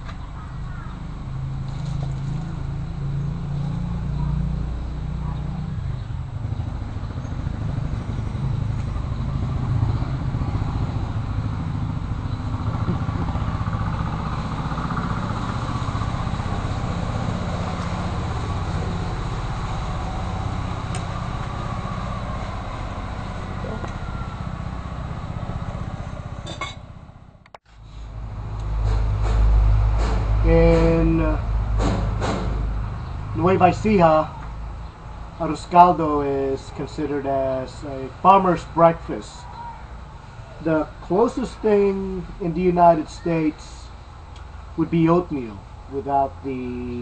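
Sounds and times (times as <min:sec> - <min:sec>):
low engine rumble: 0:00.0 - 0:47.0.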